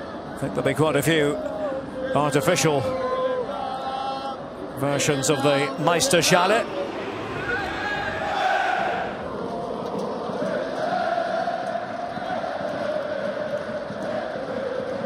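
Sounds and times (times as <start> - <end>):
football crowd chanting: 1.5 - 15.0.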